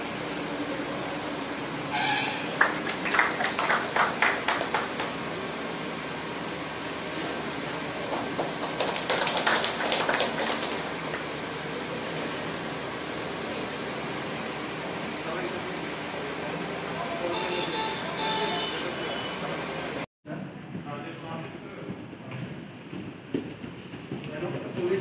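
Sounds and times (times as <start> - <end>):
small group clapping: 2.5 - 5.4, 8.0 - 11.4.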